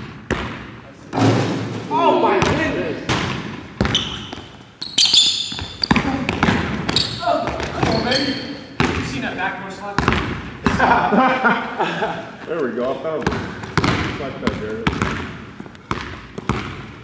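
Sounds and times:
basketball bouncing on hardwood floor: 0.0s - 0.7s, 2.4s - 4.5s, 5.4s - 8.2s, 8.8s - 9.1s, 10.0s - 10.9s, 13.2s - 17.0s
players' voices: 0.8s - 3.4s, 5.7s - 15.0s.

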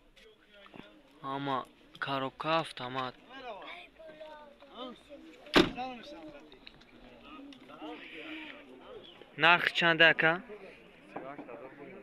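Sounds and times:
car door slamming: 5.5s - 5.9s.

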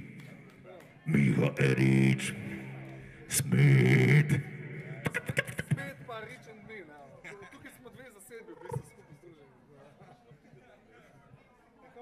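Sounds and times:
man making vocal sounds: 1.1s - 6.1s.

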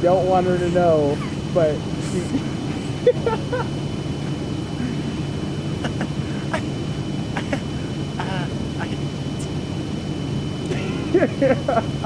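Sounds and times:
low outdoor rumble: 0.0s - 12.0s
person laughing: 0.5s - 3.8s, 4.8s - 8.5s, 10.7s - 12.0s.

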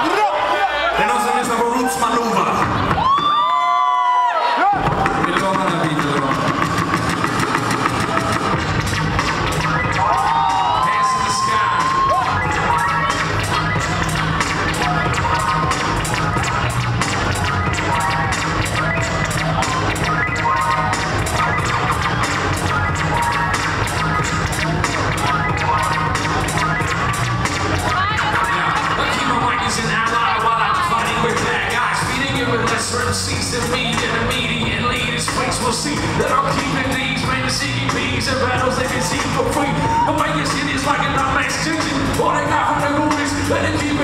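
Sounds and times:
crowd cheering and shouting: 0.0s - 44.0s
hip-hop beat over speakers: 0.9s - 44.0s.

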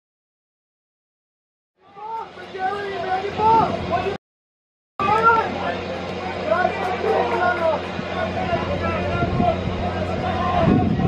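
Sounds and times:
people shouting and calling out: 1.8s - 4.2s, 5.0s - 11.0s
steady low hum: 5.0s - 11.0s.

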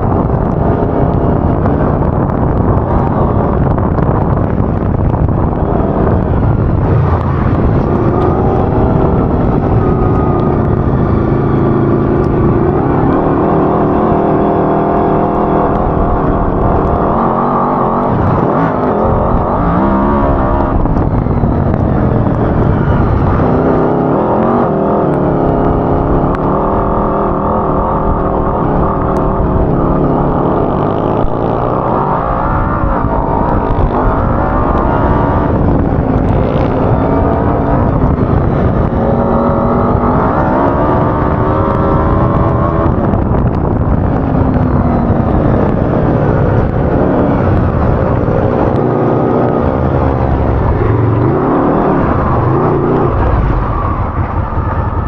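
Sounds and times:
buggy engine revving: 0.0s - 55.0s.

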